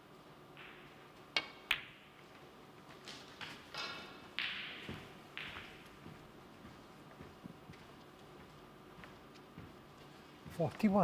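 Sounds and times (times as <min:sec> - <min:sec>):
balls colliding click: 0:00.5 - 0:02.2, 0:03.4 - 0:06.0
cue tip striking ball: 0:00.6 - 0:02.1, 0:03.8 - 0:05.9.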